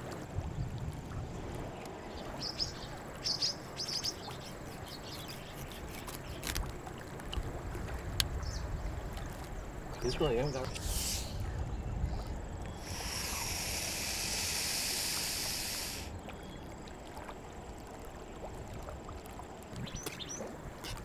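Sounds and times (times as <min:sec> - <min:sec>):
wind rumble on microphone: 0:00.0 - 0:03.2, 0:04.9 - 0:16.6, 0:18.4 - 0:21.0.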